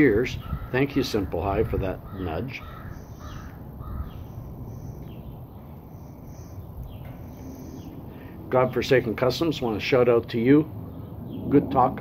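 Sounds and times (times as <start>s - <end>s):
bird calling: 0.0s - 9.0s
low outdoor rumble: 0.0s - 12.0s.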